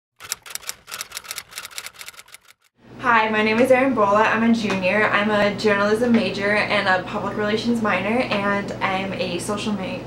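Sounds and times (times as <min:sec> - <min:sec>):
typewriter key clacks: 0:00.2 - 0:02.7.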